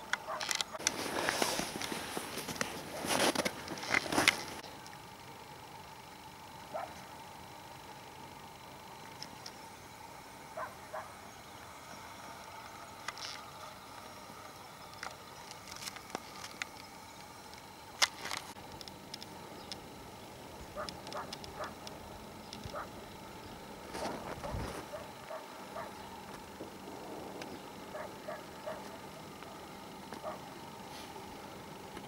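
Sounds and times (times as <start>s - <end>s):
small birds chirping: 8.9s - 18.0s, 18.9s - 31.5s.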